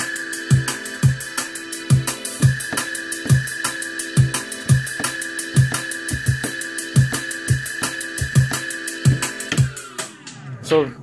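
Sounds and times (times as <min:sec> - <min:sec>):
drum and bass music: 0:00.0 - 0:10.9.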